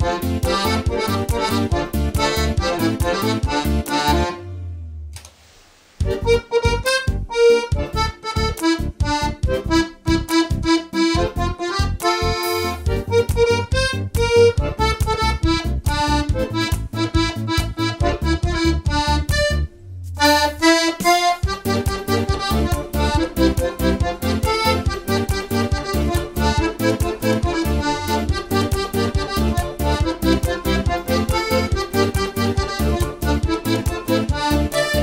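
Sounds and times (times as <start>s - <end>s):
piano accordion playing: 0.0s - 4.9s, 6.0s - 35.0s.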